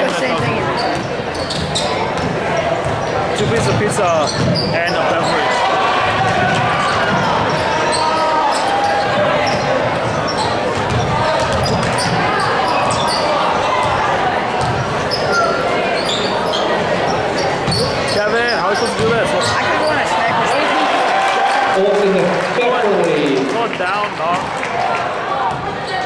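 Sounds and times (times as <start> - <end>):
spectator chatter: 0.0 - 26.0.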